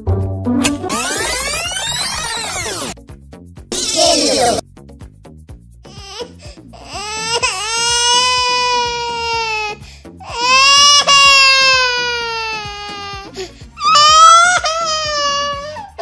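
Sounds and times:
background music with beat: 0.0 - 3.8, 4.6 - 16.0.

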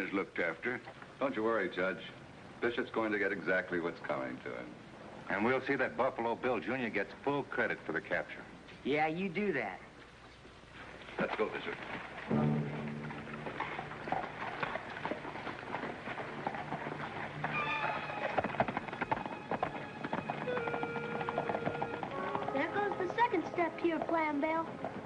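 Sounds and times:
horse hoofbeats: 11.2 - 25.0
background music: 12.3 - 24.2.

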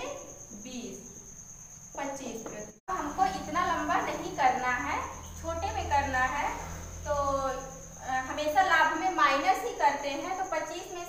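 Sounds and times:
woman speaking: 0.0 - 1.1, 2.0 - 11.0.

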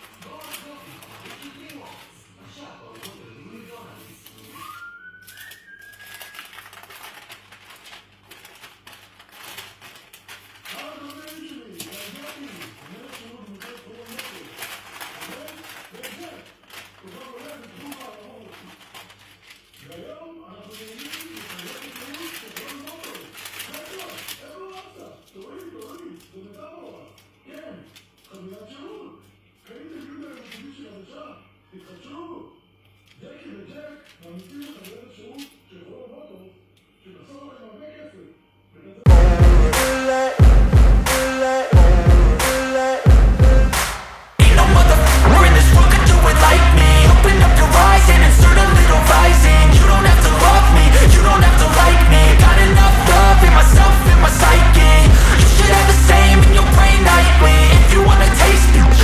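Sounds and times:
baking paper crinkling: 0.0 - 31.0, 32.9 - 35.7, 41.1 - 59.0.

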